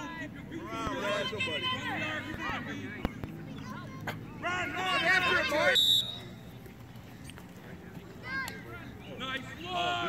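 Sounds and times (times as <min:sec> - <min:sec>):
spectators shouting: 0:04.4 - 0:06.3, 0:09.4 - 0:10.0.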